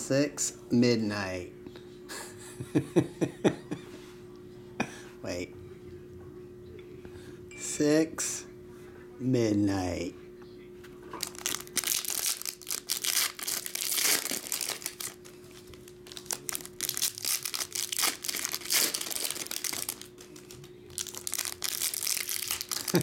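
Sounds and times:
foil wrappers crinkling and tearing: 11.2 - 23.0.

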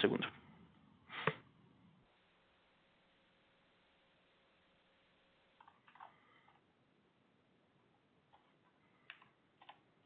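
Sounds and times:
computer keys clicking: 5.6 - 6.6, 8.3 - 9.8.

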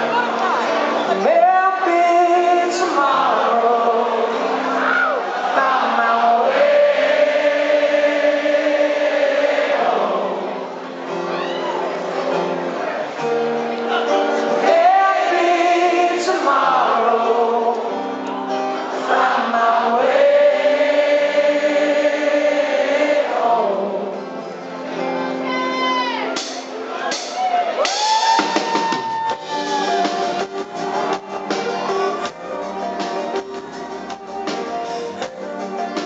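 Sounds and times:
acoustic guitar: 0.0 - 9.1, 9.8 - 36.0
live rock band chords: 0.0 - 36.0.

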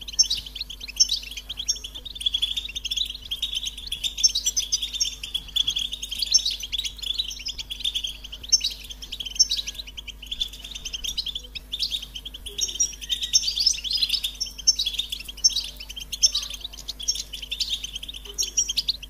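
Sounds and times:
finch twittering: 0.0 - 19.0.

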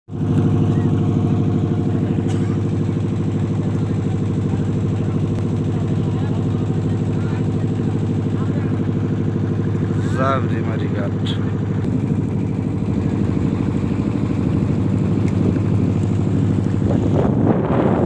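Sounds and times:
boat engine running: 0.1 - 18.0.

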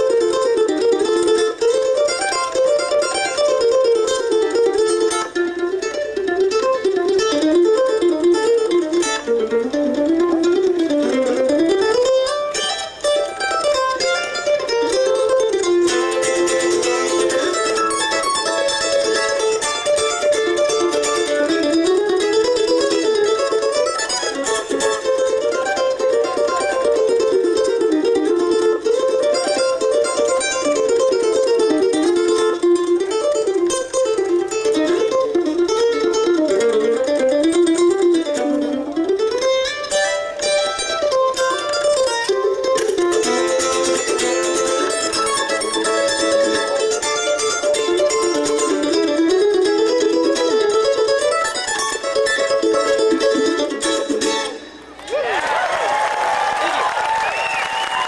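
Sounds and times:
mandolins playing bluegrass tune: 0.0 - 55.4.

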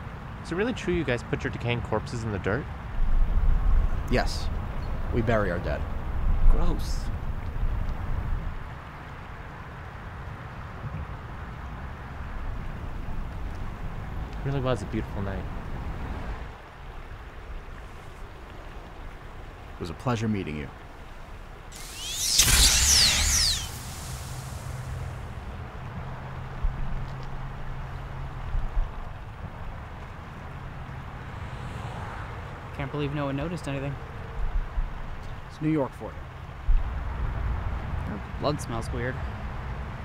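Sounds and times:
high electronic whines: 21.7 - 25.4
hiss: 21.7 - 25.4.

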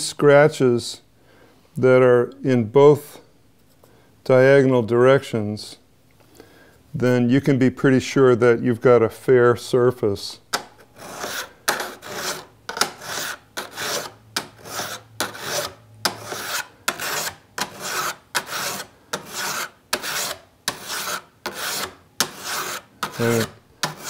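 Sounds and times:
file rasping on metal frets: 10.9 - 24.0.

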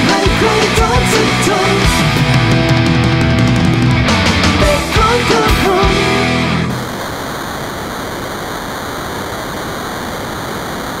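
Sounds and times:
steady hiss: 5.3 - 11.0.

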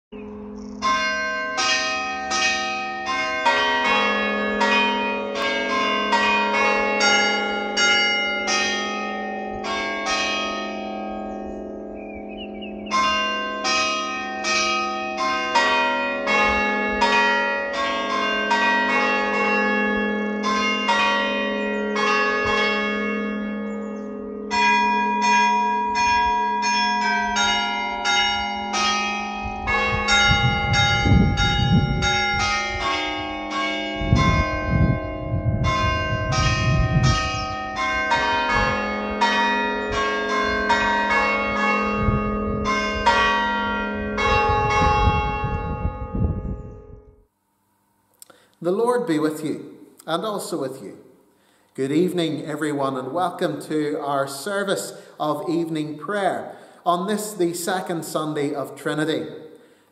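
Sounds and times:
church bells ringing: 0.1 - 47.3, 48.3 - 59.9.

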